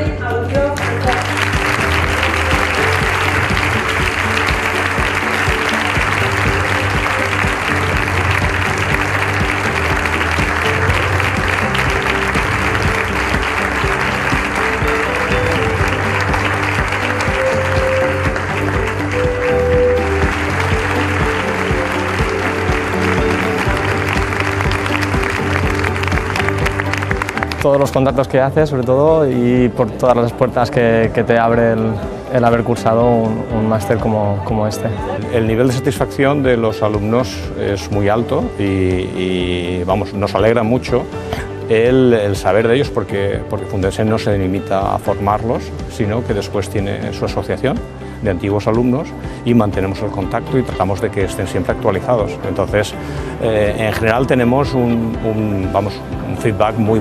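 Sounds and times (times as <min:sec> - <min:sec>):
background music: 0:00.0 - 0:57.0
audience applauding: 0:00.8 - 0:28.3.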